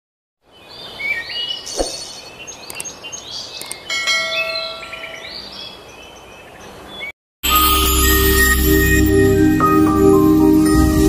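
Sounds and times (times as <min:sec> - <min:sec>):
birds chirping and twittering: 0:00.4 - 0:07.1
short thump: 0:01.8 - 0:02.0
bell-like chime: 0:03.9 - 0:05.2, 0:07.4 - 0:11.0.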